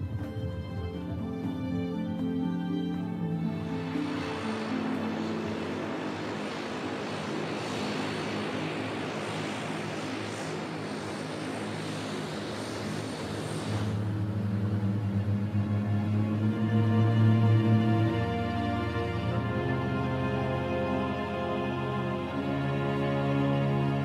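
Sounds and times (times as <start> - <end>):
music: 0.0 - 9.2, 14.6 - 24.0
turboprop engines running: 0.0 - 24.0.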